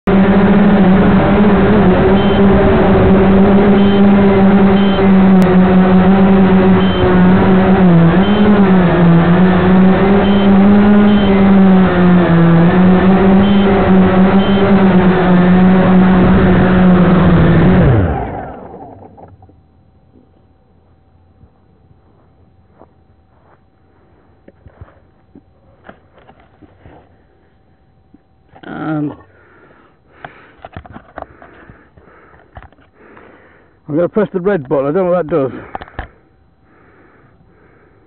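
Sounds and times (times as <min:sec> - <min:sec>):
drone motors and propellers whirring: 0:00.1 - 0:27.4.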